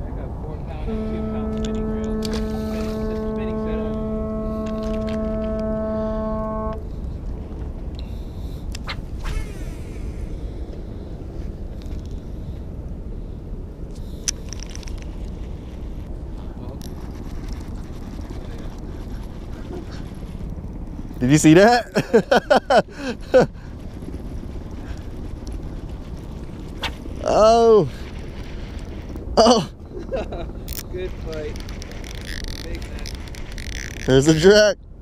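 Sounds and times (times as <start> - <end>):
wind and water rumble: 0.0 - 35.0
marine horn long note: 0.8 - 7.0.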